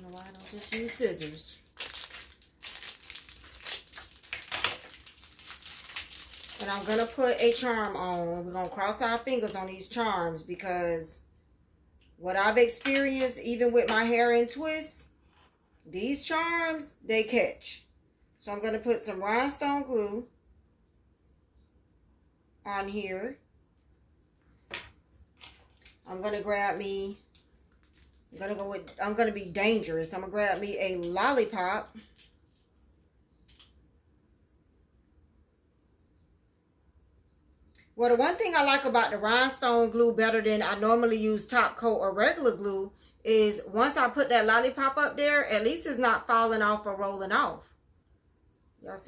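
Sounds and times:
plastic packet crinkling: 0.0s - 9.2s, 24.4s - 28.9s, 30.5s - 32.8s.

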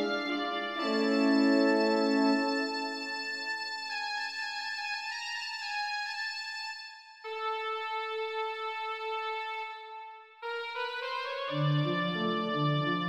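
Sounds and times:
organ held chords: 0.0s - 5.3s.

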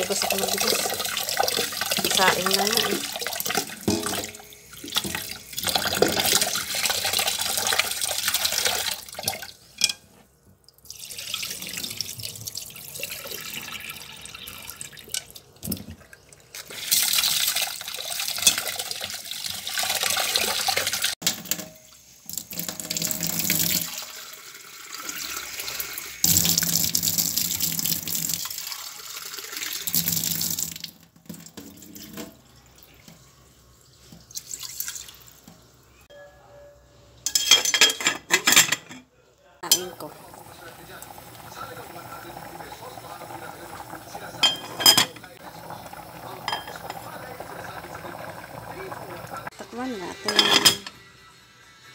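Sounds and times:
tap water running into metal pot: 0.0s - 9.5s, 10.8s - 33.3s, 39.6s - 49.6s.

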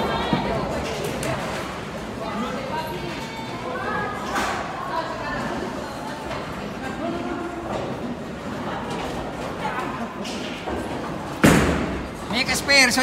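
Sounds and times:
indistinct voices in a hall: 0.0s - 13.0s.

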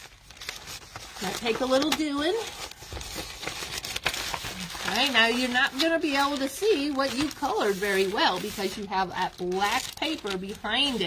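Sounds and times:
plastic zipper bag crinkling: 0.0s - 11.0s.

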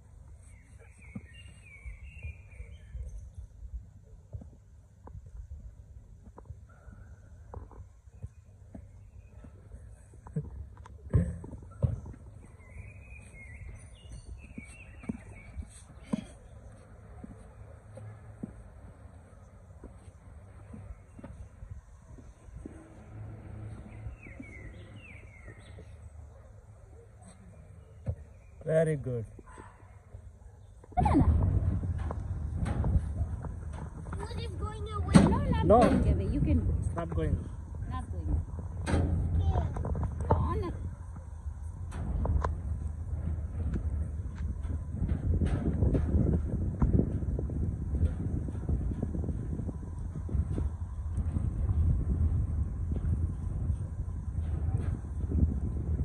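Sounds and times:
footsteps on steel grating: 11.1s - 26.0s, 31.1s - 56.0s
small bird chirping: 12.3s - 16.8s
wind buffeting microphone: 19.8s - 26.0s, 30.9s - 56.0s
low background rumble: 30.2s - 56.0s.

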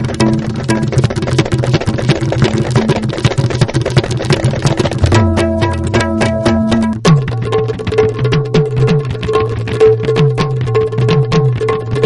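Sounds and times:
rapid drum strokes: 0.0s - 12.0s.

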